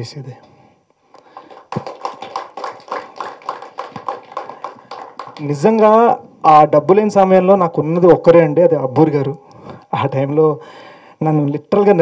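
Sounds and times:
people clapping in rhythm: 1.2s - 6.1s.

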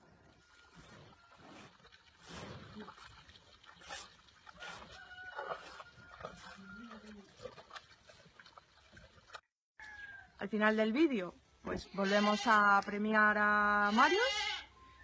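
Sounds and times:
faint rooster crowing: 4.6s - 7.2s, 9.8s - 10.4s.

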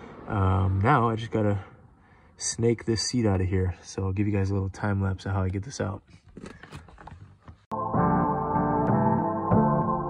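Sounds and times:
hand handling clicks and rustles: 6.0s - 7.7s
background music: 7.7s - 10.0s.

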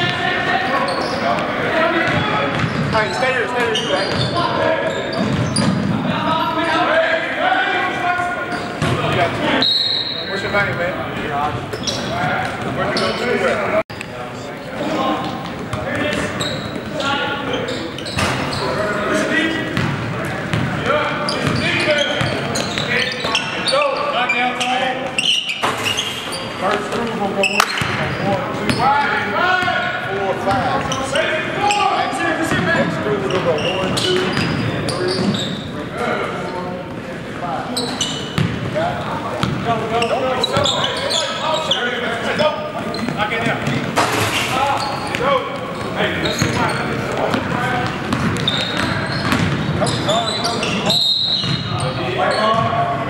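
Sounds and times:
basketball bouncing on hardwood: 2.1s - 2.9s.

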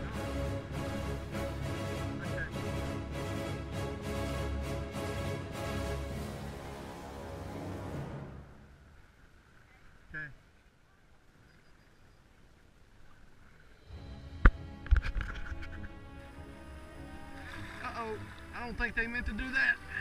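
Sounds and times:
background music: 0.0s - 8.7s, 13.8s - 20.0s
kayak paddling: 0.0s - 20.0s
river water: 0.0s - 20.0s
voices: 2.0s - 2.7s, 16.2s - 20.0s.

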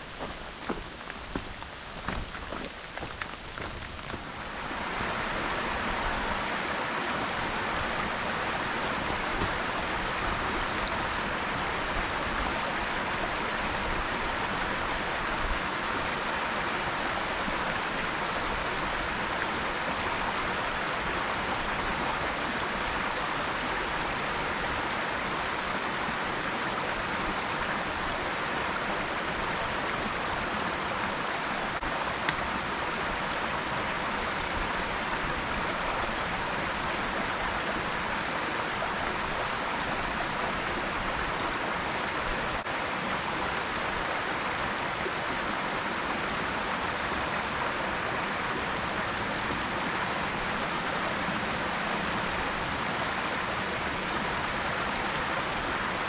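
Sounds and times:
stream rushing over stones: 0.0s - 56.0s.

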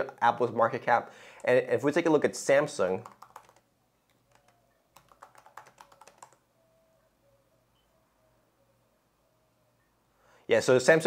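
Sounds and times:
typing on computer keyboard: 3.0s - 6.4s.

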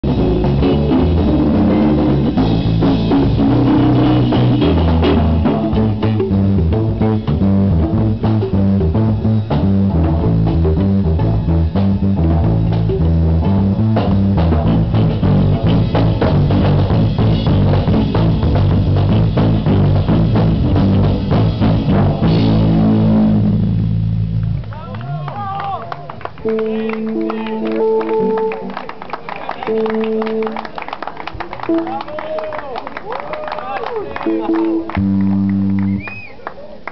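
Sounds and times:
jazz trio playing: 0.0s - 24.7s, 26.4s - 30.9s, 34.2s - 36.1s
drum kit: 0.0s - 32.4s, 34.2s - 36.3s.

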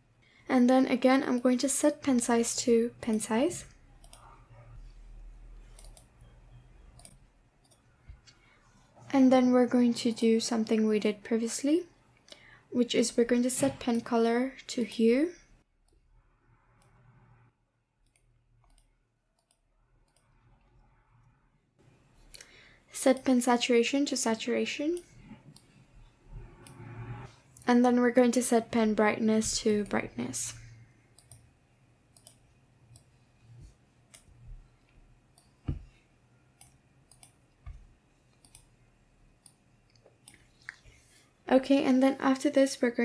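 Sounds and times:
computer mouse clicking: 3.0s - 4.4s, 5.6s - 6.1s, 6.9s - 8.4s, 16.8s - 17.2s, 18.0s - 21.4s, 26.6s - 27.7s, 31.1s - 31.5s, 32.1s - 33.2s, 34.1s - 34.4s, 35.3s - 36.0s, 36.6s - 38.8s, 39.4s - 40.8s
faint computer mouse clicks: 5.7s - 6.1s, 7.0s - 7.8s, 26.6s - 27.1s, 31.2s - 31.4s, 36.6s - 38.7s.

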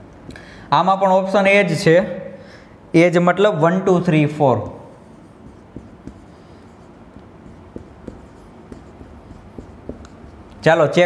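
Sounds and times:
marker writing on whiteboard: 4.6s - 10.7s.

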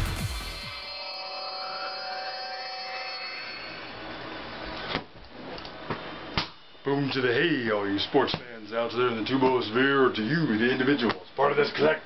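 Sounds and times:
electronic synth tones rising sweep: 0.0s - 4.6s.

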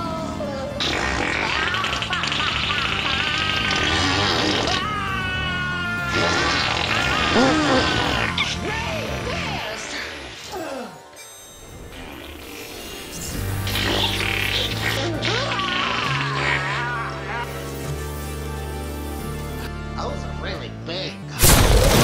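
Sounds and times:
music: 0.0s - 22.0s
comedic fart sound effects: 0.8s - 4.9s, 6.0s - 10.5s, 11.9s - 17.1s.

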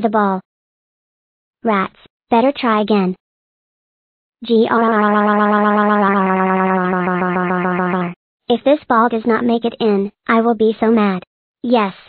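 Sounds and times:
synthetic voice growling: 4.4s - 8.2s.

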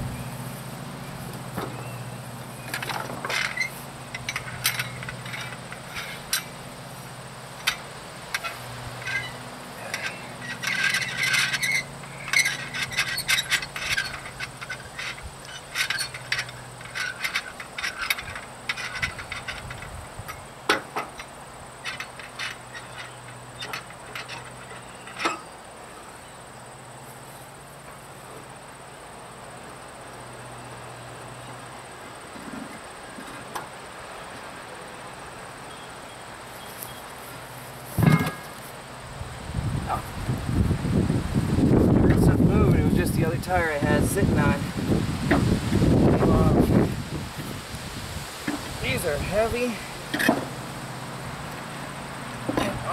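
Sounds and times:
metal tools clinking on wheel hub: 1.1s - 26.4s, 36.5s - 38.7s, 48.4s - 51.6s
wrench turning lug nuts: 2.7s - 6.6s, 7.6s - 25.5s.

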